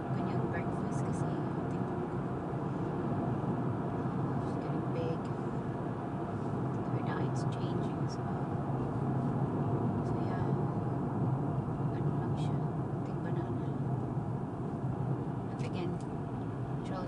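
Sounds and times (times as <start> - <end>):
car cabin road noise: 0.0 - 17.0.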